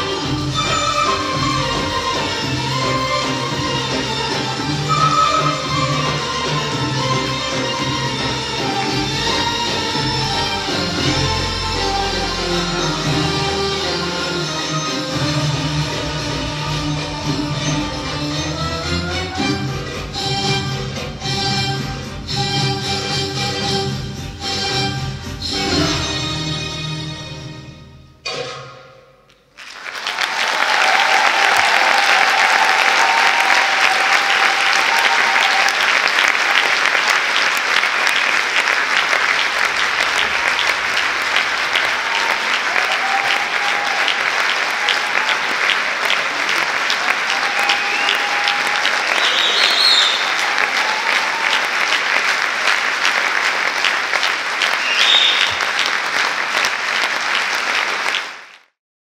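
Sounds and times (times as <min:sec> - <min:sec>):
audience applauding: 0:29.6 - 0:58.8.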